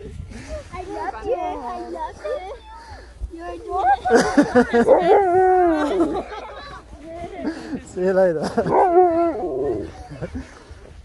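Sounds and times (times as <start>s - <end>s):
dog howling: 8.7s - 10.0s.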